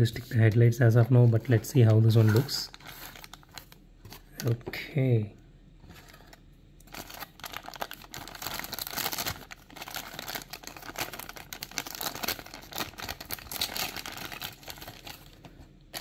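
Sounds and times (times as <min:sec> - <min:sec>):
plastic bag crinkling: 0:01.0 - 0:04.5, 0:06.0 - 0:16.0.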